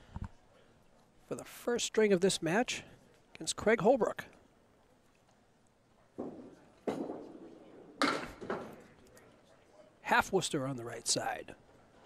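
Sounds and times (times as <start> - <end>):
bowling ball thudding and rolling: 6.2 - 8.8.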